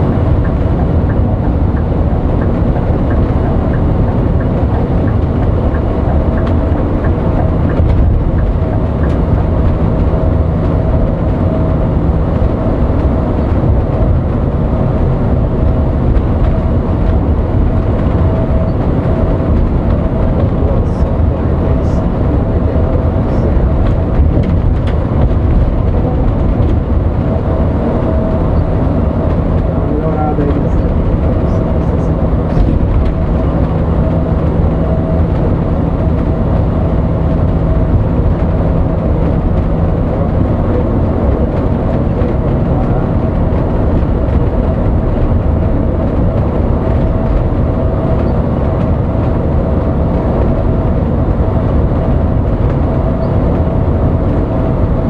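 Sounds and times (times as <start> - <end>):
bus engine and tyre rumble: 0.0 - 55.0
constant whine: 0.0 - 55.0.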